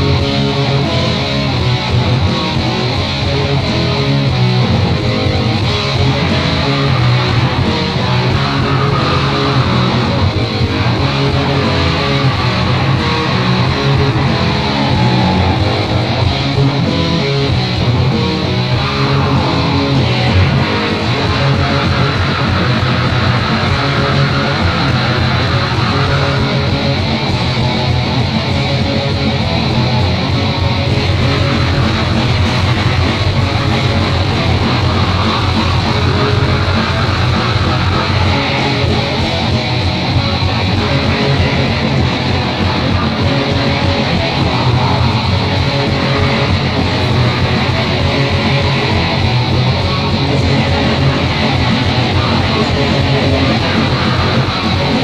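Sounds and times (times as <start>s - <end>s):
black metal song: 0.0s - 55.0s
fast-strummed electric guitars: 0.0s - 55.0s.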